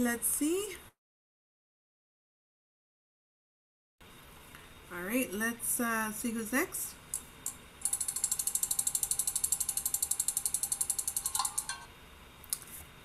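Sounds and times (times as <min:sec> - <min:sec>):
spinning wheel ticking rapidly: 0:07.8 - 0:11.8.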